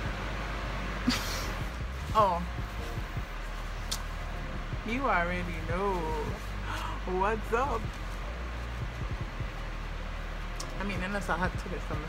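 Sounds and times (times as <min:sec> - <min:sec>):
electric fan running: 0:00.0 - 0:12.0
low steady hum: 0:00.0 - 0:12.0.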